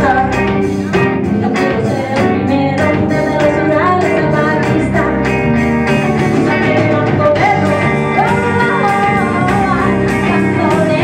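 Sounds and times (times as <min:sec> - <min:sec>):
lead singer's voice: 0:00.0 - 0:11.0
live rock band playing: 0:00.0 - 0:11.0
steady drum beat: 0:00.0 - 0:11.0.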